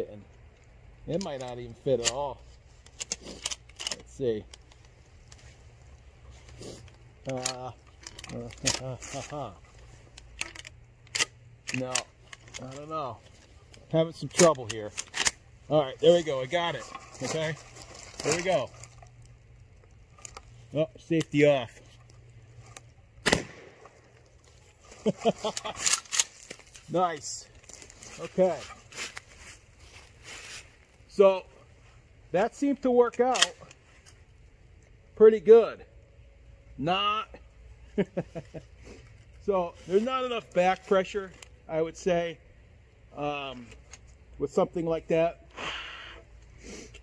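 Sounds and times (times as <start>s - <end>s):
shotgun handling clicks: 2.8s - 5.0s, 10.1s - 12.8s, 13.7s - 15.4s, 22.0s - 24.2s, 25.5s - 26.7s, 33.3s - 33.8s
clothing rustling and shuffling: 15.8s - 19.1s, 26.3s - 31.1s.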